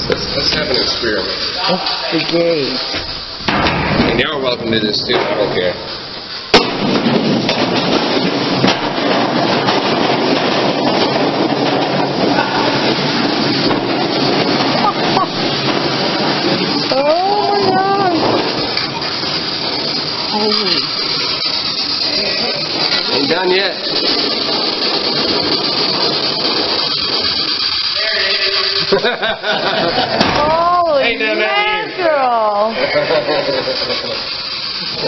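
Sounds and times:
rumbling rattle down metal chute: 0.0 - 35.0
sharp metal bang: 2.9 - 15.9, 30.0 - 31.0.

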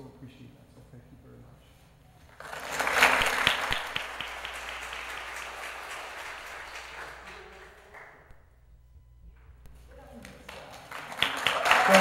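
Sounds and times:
audience applauding: 2.3 - 8.3, 10.0 - 12.0.

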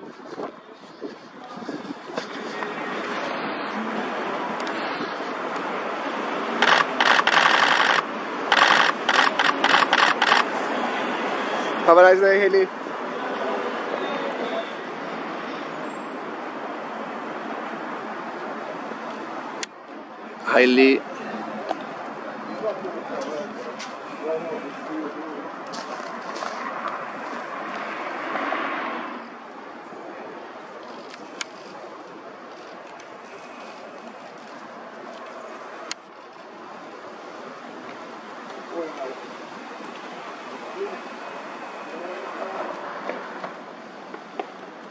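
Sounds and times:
street traffic noise: 0.0 - 44.9
camera shutter bursts: 6.6 - 10.5.

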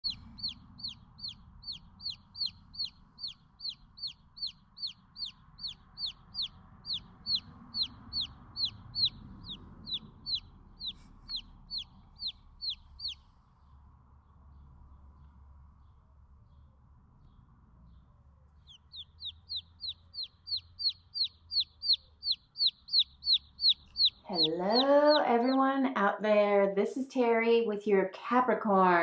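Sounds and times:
baby chicks peeping: 0.0 - 26.0.

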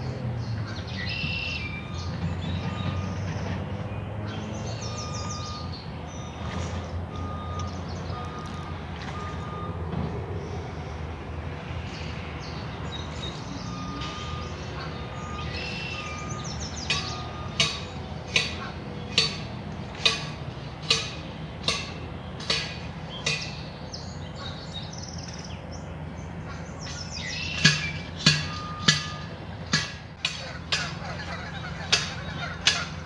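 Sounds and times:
traffic rumble: 0.0 - 33.0
birds chirping and singing: 0.4 - 6.8, 11.9 - 19.5, 20.1 - 29.0, 30.2 - 33.0
vehicle reversing alarm beeping: 1.0 - 12.3, 13.0 - 21.8, 27.1 - 33.0.

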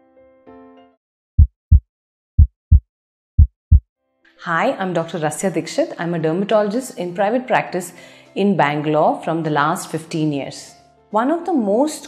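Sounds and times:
low heartbeat thumps: 1.4 - 1.8, 2.4 - 2.8, 3.4 - 3.8.

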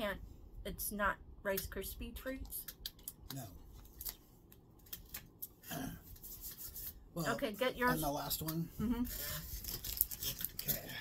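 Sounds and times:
plastic rustling: 9.0 - 11.0.

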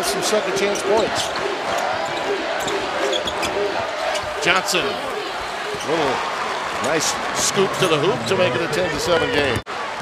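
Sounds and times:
arena crowd noise: 0.0 - 10.0
shoes squeaking: 2.0 - 4.5.

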